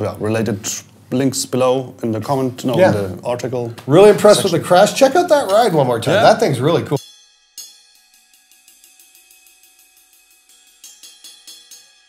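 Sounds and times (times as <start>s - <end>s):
ride cymbal struck with drumstick: 7.0s - 12.0s.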